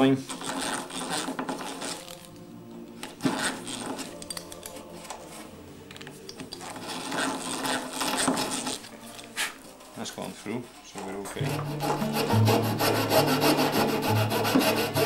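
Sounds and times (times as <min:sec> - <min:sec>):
hand drill boring through wood: 0:00.0 - 0:02.2, 0:03.2 - 0:04.2, 0:06.5 - 0:08.9, 0:11.4 - 0:15.0.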